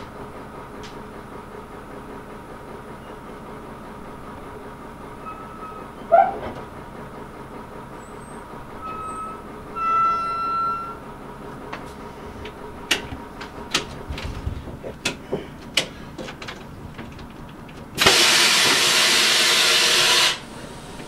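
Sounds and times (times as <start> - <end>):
train rumbling along track: 0.0 - 21.0
train wheels squealing: 5.2 - 6.4, 8.0 - 11.1.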